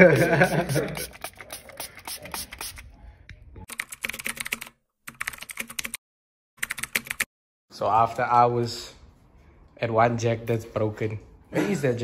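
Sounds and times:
computer keyboard typing clicks: 0:03.7 - 0:06.0.

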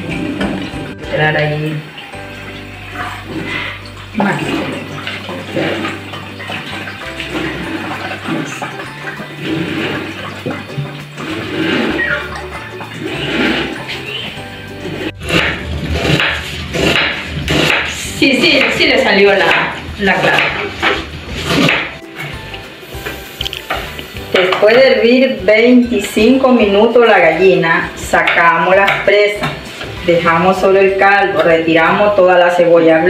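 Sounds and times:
background music: 0:00.0 - 0:33.0
liquid pouring and splashing: 0:01.6 - 0:18.1.

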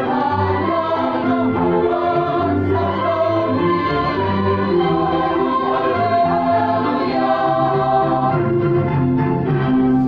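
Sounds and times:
mixed choir singing: 0:00.0 - 0:10.0.

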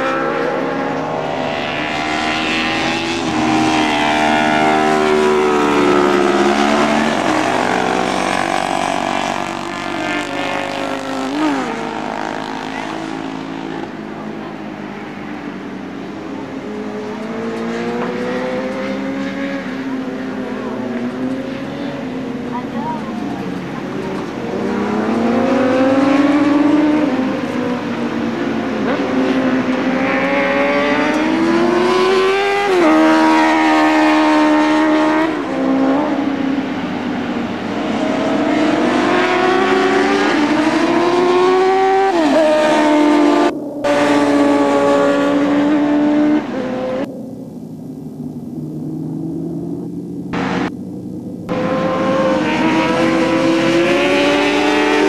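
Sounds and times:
motorcycle engines racing: 0:00.0 - 0:55.0.

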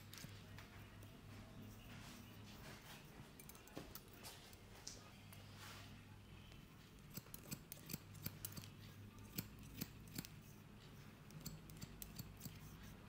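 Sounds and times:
scissors snipping hair: 0:03.4 - 0:04.2, 0:07.0 - 0:10.6, 0:11.2 - 0:13.0.

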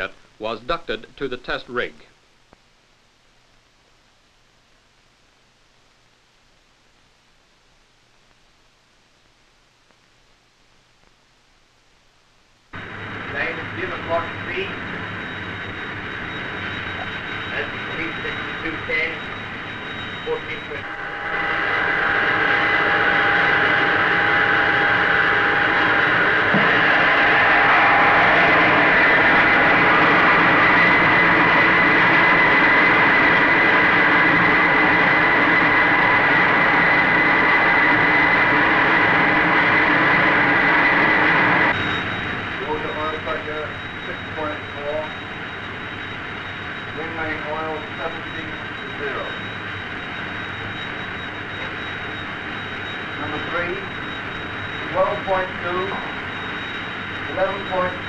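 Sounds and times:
rotor jet rush and whine: 0:12.8 - 0:58.0.

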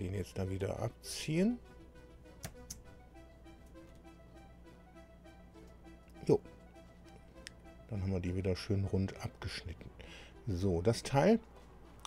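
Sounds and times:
faint background music: 0:00.0 - 0:12.0
computer mouse clicks: 0:02.4 - 0:02.8.

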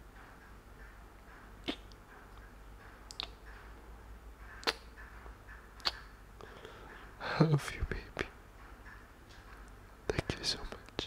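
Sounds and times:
man whispering softly: 0:07.2 - 0:08.4, 0:10.1 - 0:11.0.

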